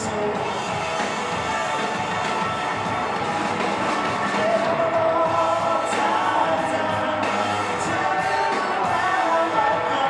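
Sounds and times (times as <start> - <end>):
drum kit: 0.0 - 10.0
electric guitar: 0.0 - 10.0.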